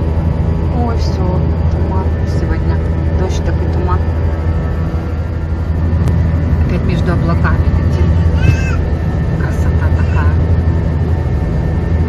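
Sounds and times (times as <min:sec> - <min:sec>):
airliner cabin drone: 0:00.0 - 0:12.0.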